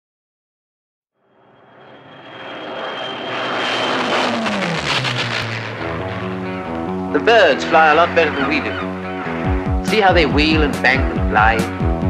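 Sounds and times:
aircraft engine passing: 1.3 - 12.0.

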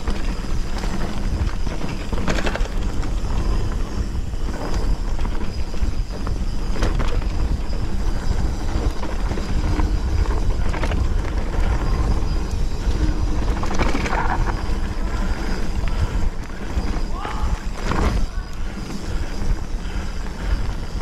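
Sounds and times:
bike rattling over bumps: 0.0 - 21.0
bike tyres on dirt: 0.0 - 21.0
wind rumble on microphone: 0.0 - 21.0.

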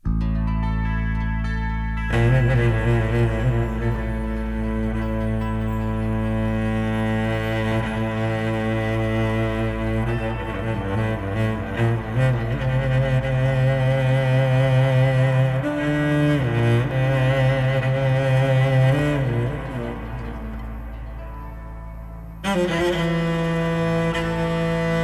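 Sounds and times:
low sustained note: 0.0 - 25.0
cello solo melody: 2.0 - 25.0.

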